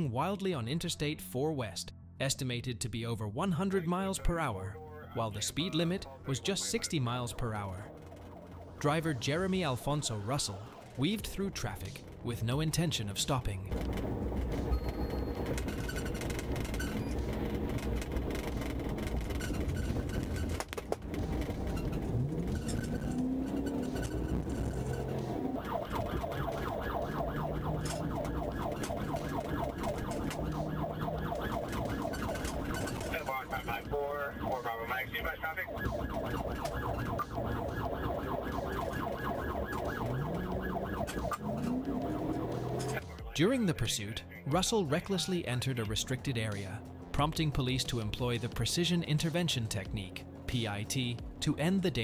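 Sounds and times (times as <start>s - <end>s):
car engine and road noise: 5.6s - 43.4s
police siren: 21.0s - 43.2s.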